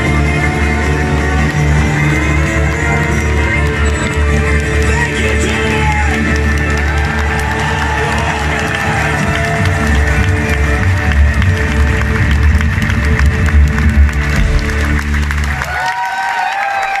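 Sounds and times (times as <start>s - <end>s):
rock band playing loudly: 0.0s - 15.6s
audience clapping along: 0.0s - 17.0s
crowd cheering and whooping: 0.0s - 17.0s.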